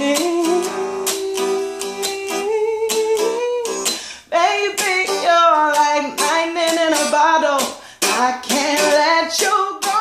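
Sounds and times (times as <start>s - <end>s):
strummed guitar: 0.0s - 10.0s.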